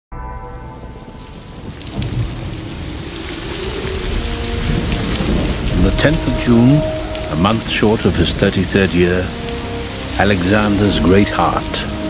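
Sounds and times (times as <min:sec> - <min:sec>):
heavy rain pouring: 0:00.8 - 0:12.0
low rolling thunder: 0:00.9 - 0:09.6.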